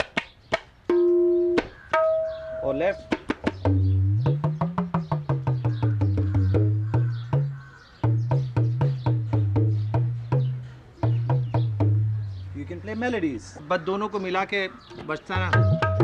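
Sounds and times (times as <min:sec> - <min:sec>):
tabla drumming: 0:00.9 - 0:12.4, 0:15.4 - 0:16.0
deep bass drum with pitch bends: 0:03.6 - 0:12.6, 0:15.4 - 0:16.0.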